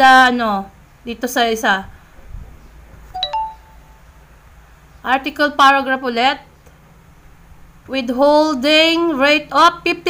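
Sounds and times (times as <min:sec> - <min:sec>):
two-note electronic chime: 0:03.2 - 0:04.1.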